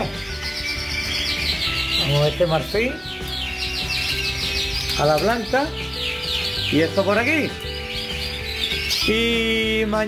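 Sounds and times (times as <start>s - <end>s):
canaries trilling: 0.0s - 10.0s.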